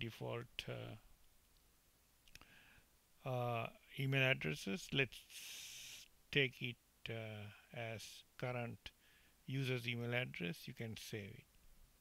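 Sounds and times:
faint click: 1.2 - 2.5.

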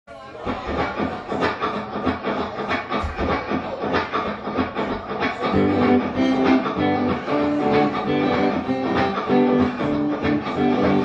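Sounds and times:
electric guitar strumming: 1.4 - 11.0.

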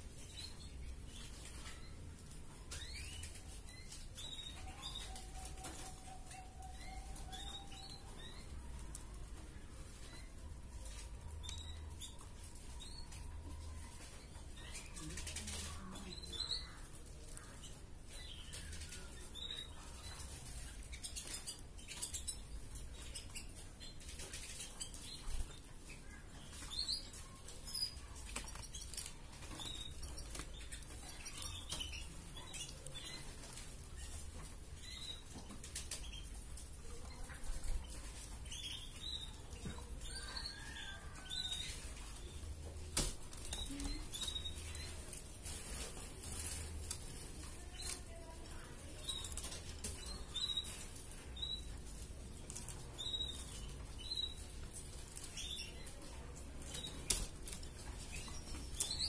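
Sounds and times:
canary chirping: 0.0 - 59.0.

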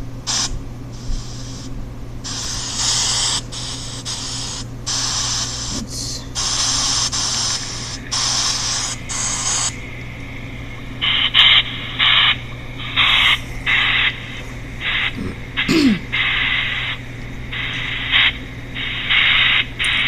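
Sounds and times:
hiss played through small speaker: 0.0 - 20.0
steady low hum: 0.0 - 20.0
chopped pink noise bursts: 0.2 - 20.0.

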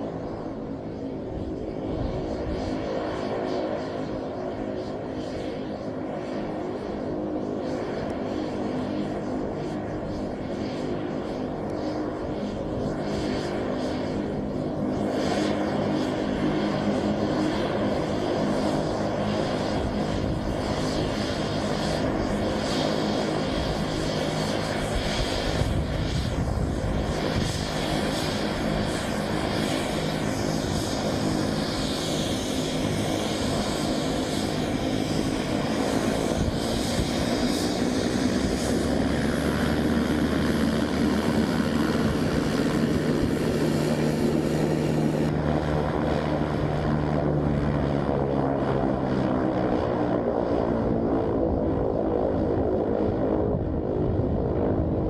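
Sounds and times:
turboprop engine running: 0.0 - 55.0.

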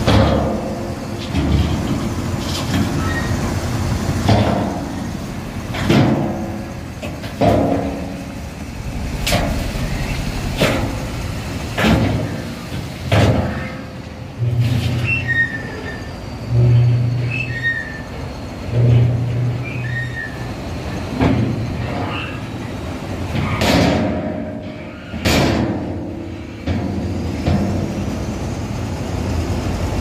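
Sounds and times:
ore sliding off truck rumble: 0.0 - 23.4
low hum: 5.0 - 14.6.

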